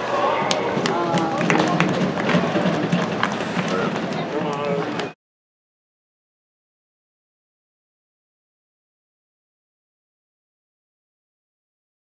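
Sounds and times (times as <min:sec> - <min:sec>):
spectators chattering: 0:00.0 - 0:05.2.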